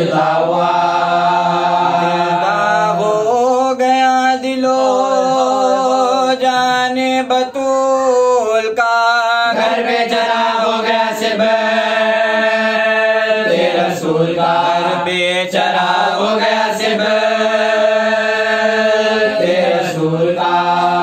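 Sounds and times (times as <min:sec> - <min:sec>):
person chanting a lament: 0:00.0 - 0:21.0.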